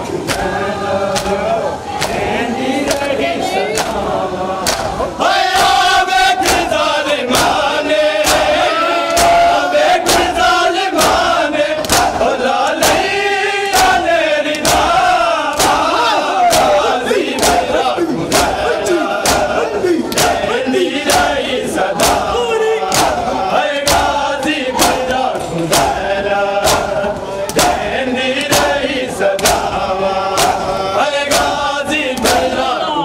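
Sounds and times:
men chanting a lament: 0.0s - 33.0s
hands slapping chests: 1.2s - 1.4s, 4.6s - 4.9s, 6.4s - 7.6s, 9.1s - 9.4s, 10.0s - 10.4s, 11.0s - 12.2s, 13.7s - 15.9s, 16.5s - 18.6s, 19.2s - 20.5s, 22.0s - 22.3s, 27.5s - 28.8s, 29.4s - 29.7s.

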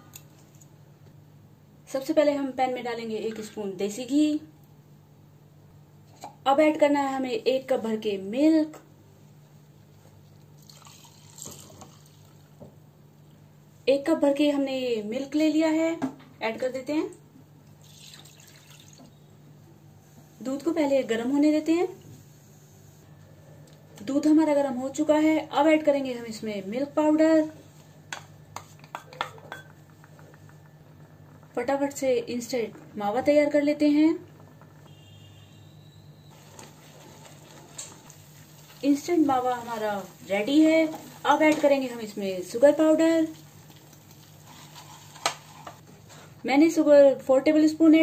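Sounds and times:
milk pouring into cup: 10.6s - 12.5s, 17.8s - 19.1s.

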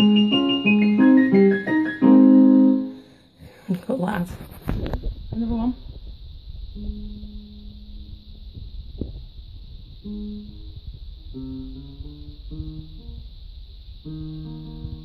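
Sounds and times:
electronic keyboard playing: 0.0s - 3.0s.

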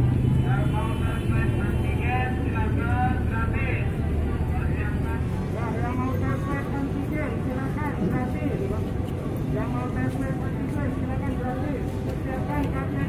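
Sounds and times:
traffic rumble: 0.0s - 13.0s.

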